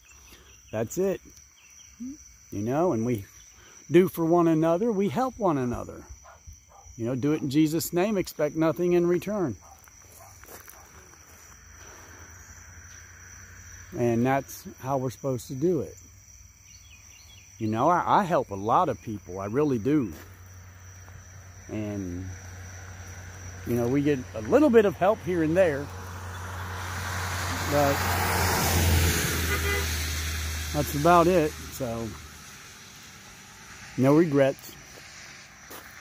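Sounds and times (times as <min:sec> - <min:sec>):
high-pitched insect chorus: 0:00.0 - 0:36.0
car passing: 0:08.5 - 0:15.0, 0:19.9 - 0:36.0.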